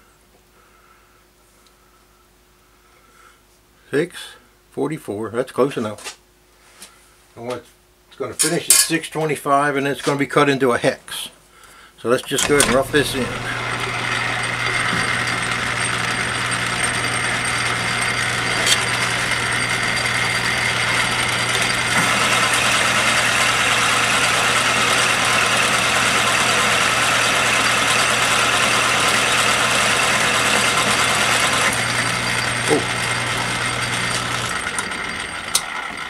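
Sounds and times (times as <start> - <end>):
lathe motor hum: 12.4 - 36.0.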